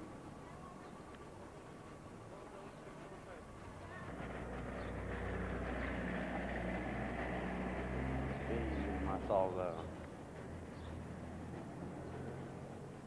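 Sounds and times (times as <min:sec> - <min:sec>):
faint voices: 0:00.0 - 0:06.8
vehicle engine running: 0:03.8 - 0:13.0.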